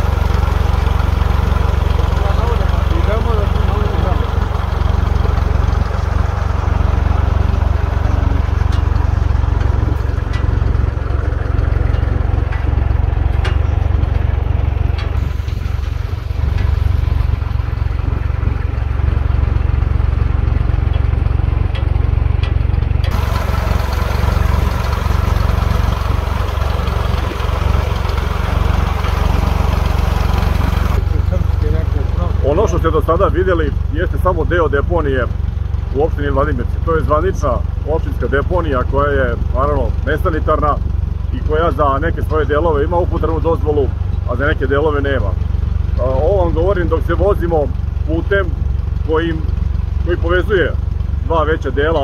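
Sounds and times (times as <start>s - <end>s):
tractor engine running: 0.0s - 52.0s.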